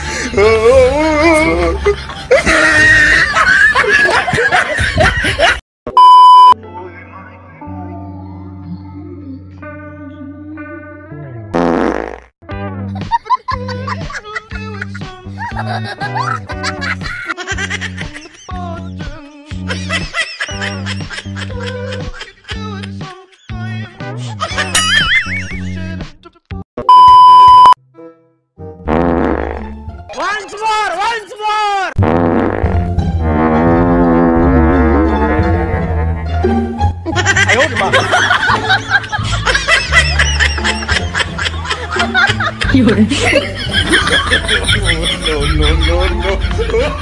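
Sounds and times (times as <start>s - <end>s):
background music: 0.0s - 5.4s, 6.0s - 11.6s, 12.4s - 26.2s, 27.8s - 47.0s
fart sound effect: 11.6s - 12.3s, 28.9s - 29.7s, 32.0s - 36.2s.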